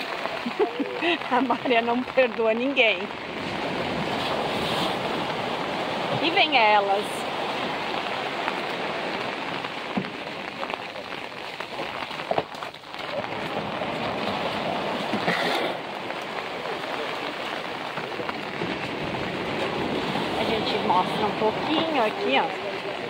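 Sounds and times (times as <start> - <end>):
rain: 0.0 - 23.0.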